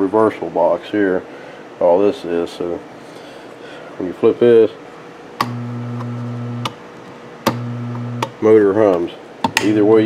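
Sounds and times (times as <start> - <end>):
electric motor humming: 5.4 - 6.8, 7.4 - 8.4
toggle switch clicks: 7.4 - 9.7.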